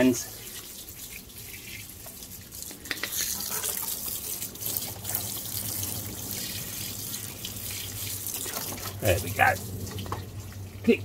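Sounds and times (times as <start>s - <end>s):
hose water spraying and splashing: 0.0s - 11.0s.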